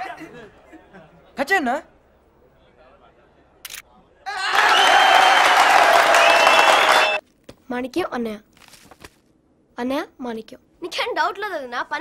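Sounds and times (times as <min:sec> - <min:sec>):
crowd of men clapping and cheering: 0:04.3 - 0:07.2.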